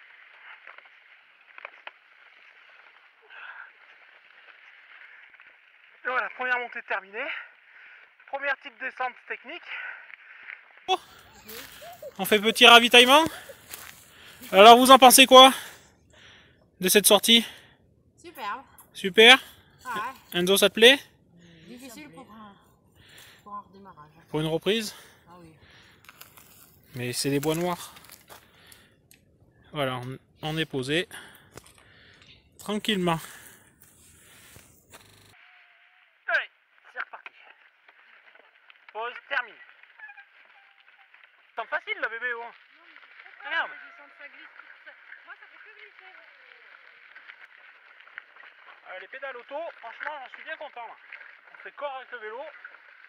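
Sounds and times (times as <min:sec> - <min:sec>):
wind: 0:00.0 - 0:53.0
mountain bike rolling on track: 0:09.8 - 0:14.9, 0:33.2 - 0:35.4, 0:42.1 - 0:53.0
faint voices: 0:10.9 - 0:14.6.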